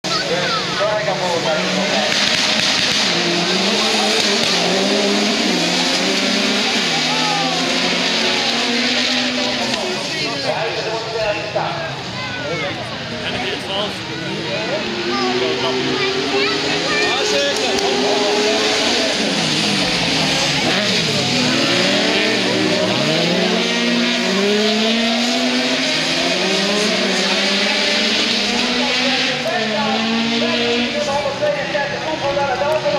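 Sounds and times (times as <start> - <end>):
race car engines: 0.0 - 32.9.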